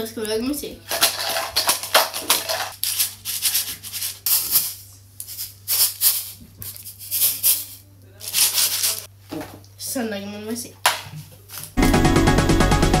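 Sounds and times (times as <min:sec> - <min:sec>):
homemade rice shakers rattling: 0:00.8 - 0:09.1.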